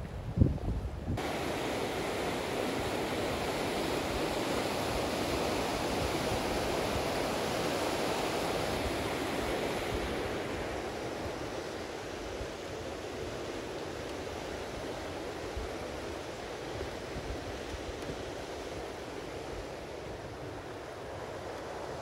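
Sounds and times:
river rushing over stones: 1.2 - 22.0.

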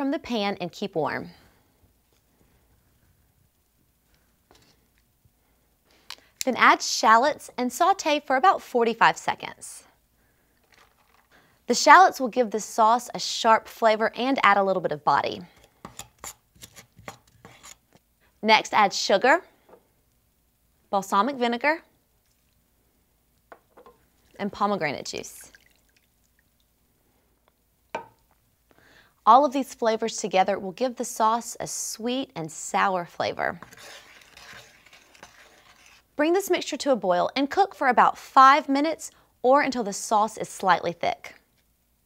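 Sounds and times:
wooden spoon scraping a skillet: 15.5 - 18.0, 33.6 - 36.2.

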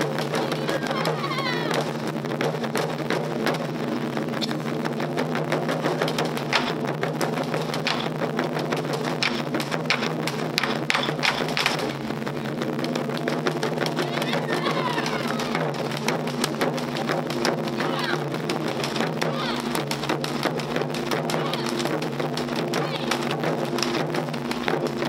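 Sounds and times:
barrel drums beaten rapidly: 0.0 - 25.0.

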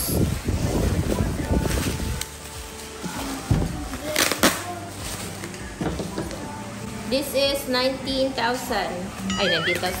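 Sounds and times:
bubble wrap crinkling and rustling: 0.0 - 5.8
background music: 0.0 - 10.0.

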